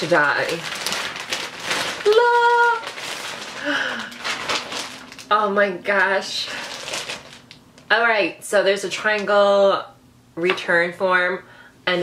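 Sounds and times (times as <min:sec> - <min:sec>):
plastic bags rustling: 0:00.0 - 0:07.9.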